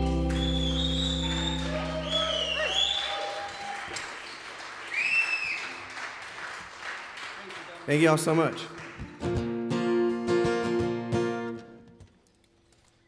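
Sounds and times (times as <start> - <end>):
audience clapping and cheering: 0.0 - 9.5
loud whistle: 0.2 - 4.1, 4.8 - 5.9.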